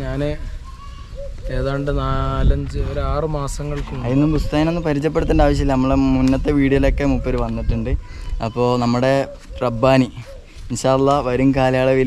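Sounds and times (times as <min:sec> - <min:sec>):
man speaking outdoors: 0:00.0 - 0:12.0.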